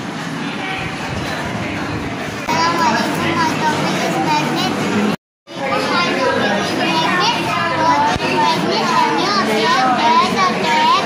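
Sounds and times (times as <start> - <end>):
children's voices babbling: 5.6 - 11.0.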